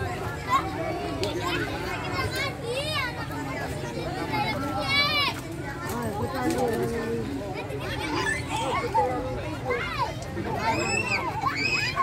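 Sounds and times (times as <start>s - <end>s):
children shouting and squealing: 0.0s - 5.6s, 7.6s - 12.0s
general voices: 0.0s - 12.0s.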